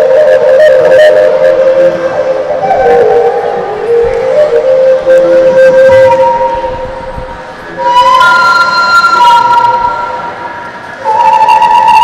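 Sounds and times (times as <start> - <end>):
small wind instrument long notes: 0.0 - 12.0.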